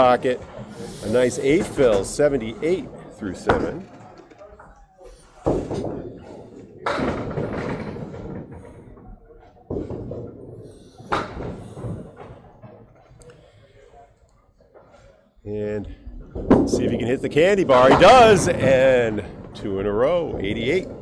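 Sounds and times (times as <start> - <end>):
bowling balls knocking pins: 0.0 - 9.1, 9.7 - 13.0, 16.3 - 21.0.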